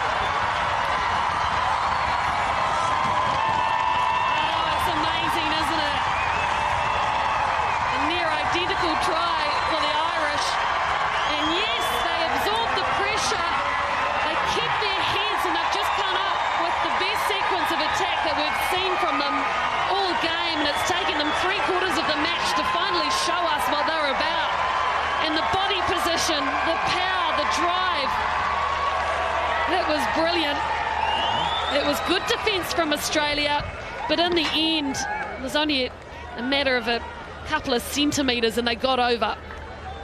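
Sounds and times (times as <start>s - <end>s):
scattered claps: 0.0s - 29.5s
stadium crowd cheering: 0.0s - 40.0s.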